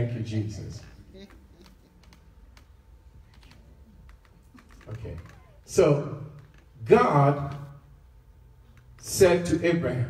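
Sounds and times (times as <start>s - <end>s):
faint irregular clicks and taps: 1.2s - 5.5s.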